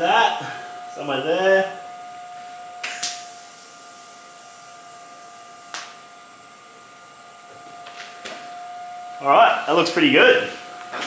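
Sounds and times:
welding arc hissing: 2.8 - 6.0.

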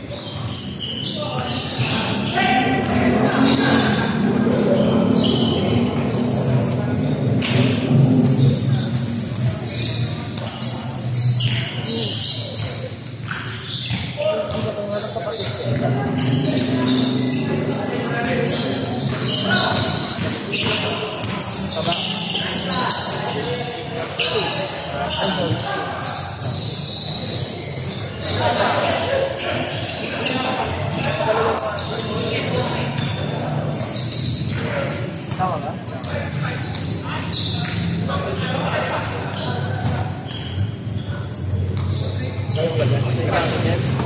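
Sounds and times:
shoes squeaking on floor: 0.0 - 44.0
voices calling out: 0.0 - 44.0
basketball bouncing on wooden court: 18.0 - 22.0.

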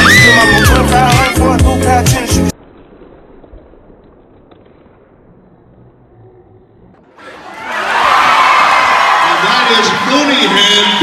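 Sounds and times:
crowd cheering and yelling: 0.0 - 1.3, 7.1 - 11.0
murmur of arena crowd: 5.7 - 11.0.

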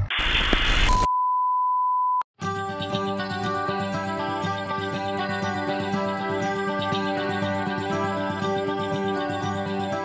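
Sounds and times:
loud single-pitched beep: 0.7 - 2.2.

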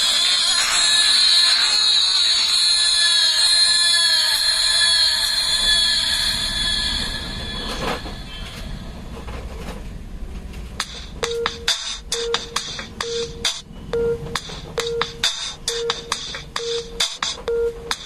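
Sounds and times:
thin shrill music through small speakers: 0.0 - 8.8, 10.8 - 18.0.

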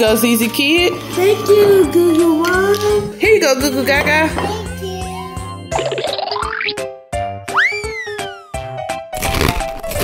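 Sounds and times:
children's background music: 0.0 - 9.1
falling cartoon whistle: 7.5 - 8.6
crunching of raw beans: 9.2 - 10.0.

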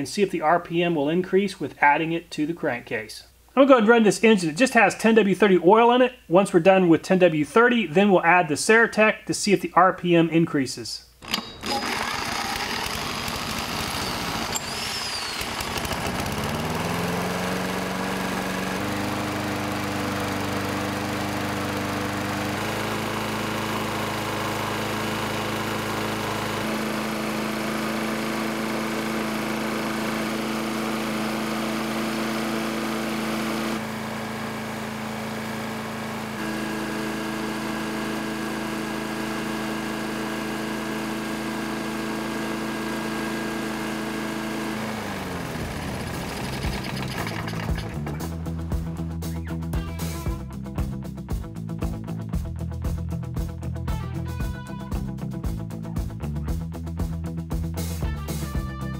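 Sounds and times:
lawn mower engine running: 11.2 - 49.4.

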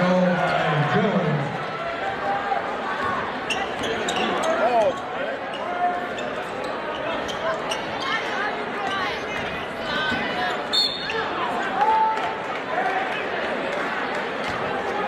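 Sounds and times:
crowd chatter and calls: 0.0 - 15.0.

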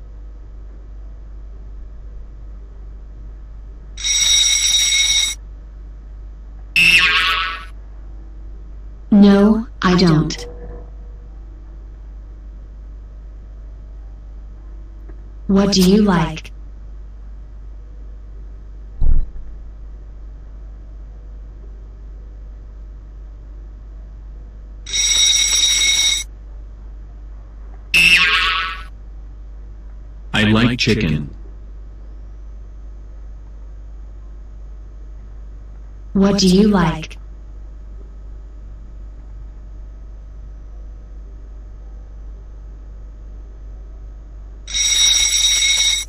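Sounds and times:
electronic time-up buzzer: 4.0 - 5.4, 6.8 - 7.8, 24.9 - 26.3, 28.0 - 28.9, 44.7 - 46.0.

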